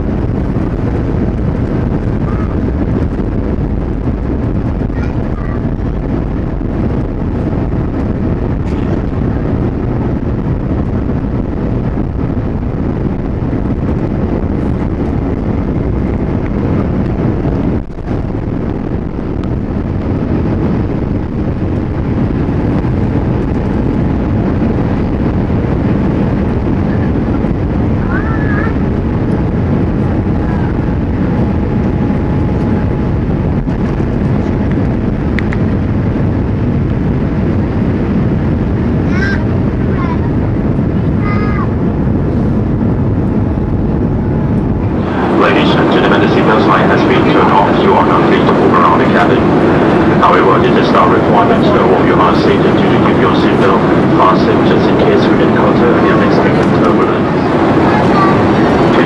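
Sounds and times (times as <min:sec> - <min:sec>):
airplane cabin engine rumble: 0:00.0 - 0:59.0
air rushing past: 0:39.6 - 0:47.8.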